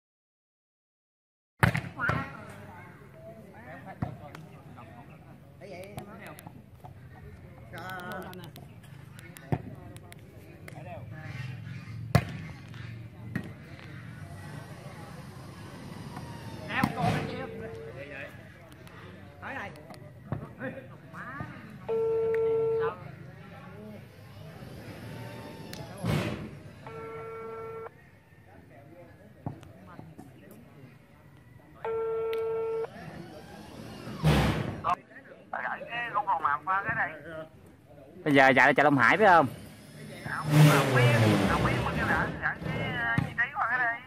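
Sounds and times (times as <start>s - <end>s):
faint murmur of voices: 1.6s - 44.0s
steady horn-like tone: 26.8s - 27.9s.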